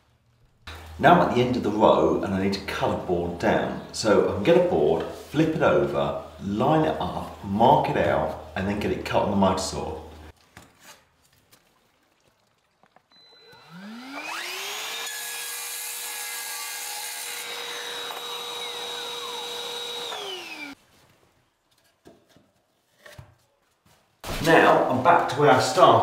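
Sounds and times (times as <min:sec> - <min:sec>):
dust extractor running: 0:13.2 - 0:20.8
mitre saw cutting floorboard: 0:13.2 - 0:20.8.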